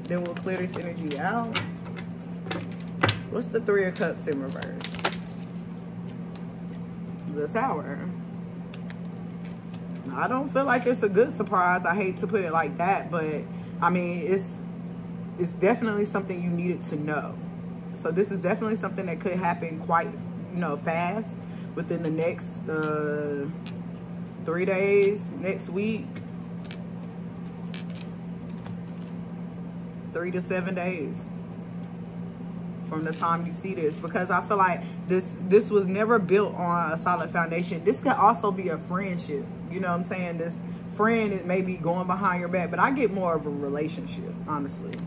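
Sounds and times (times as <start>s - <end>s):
low room hum: 0.0s - 45.0s.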